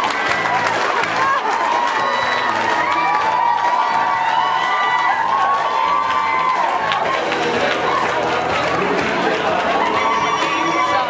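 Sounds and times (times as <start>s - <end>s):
audience cheering and whooping: 0.0s - 11.0s.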